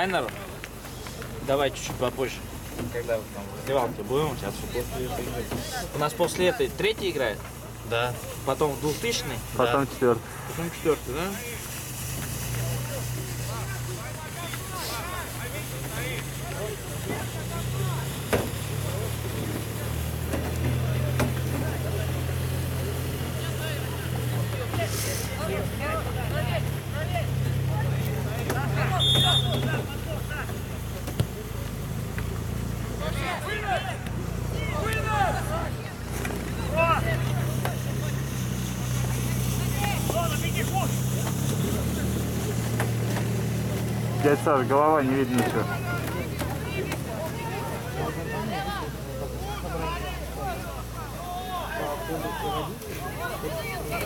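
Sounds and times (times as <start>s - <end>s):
distant shouts of players: 28.4s - 30.4s
high whistle blast: 28.9s - 29.8s.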